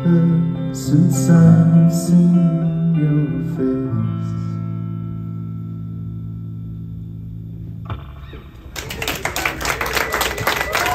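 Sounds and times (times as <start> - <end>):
audience applause: 8.7 - 10.9.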